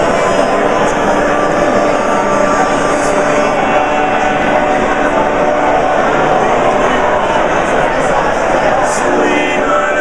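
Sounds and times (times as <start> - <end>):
dense crowd chatter: 0.0 - 10.0.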